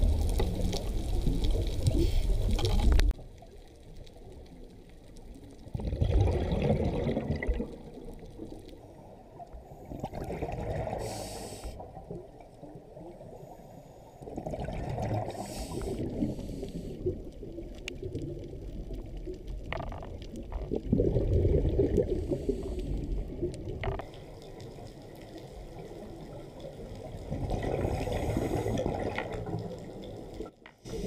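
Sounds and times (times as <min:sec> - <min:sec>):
low underwater rumble: 0:00.0 - 0:31.0
diver exhaling bubbles: 0:05.7 - 0:08.0, 0:09.8 - 0:11.8, 0:14.3 - 0:17.2, 0:20.6 - 0:23.7, 0:27.2 - 0:29.7.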